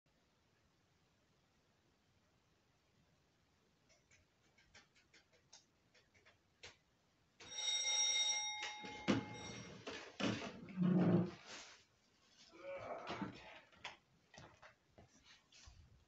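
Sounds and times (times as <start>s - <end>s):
electric doorbell ringing: 7.4s - 9.8s.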